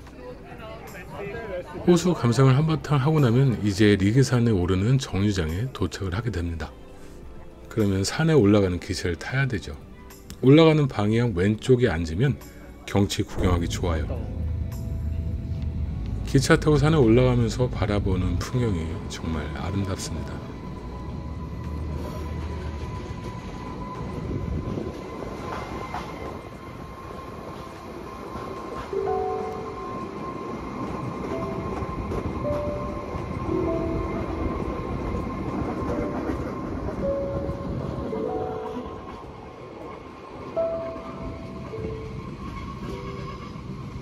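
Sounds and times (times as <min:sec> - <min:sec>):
quiet background music: 0:00.0 - 0:44.0
train running rumble: 0:12.1 - 0:44.0.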